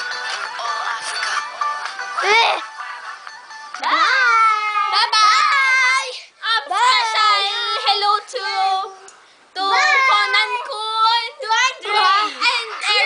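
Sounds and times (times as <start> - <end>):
child singing: 6.4 - 13.0.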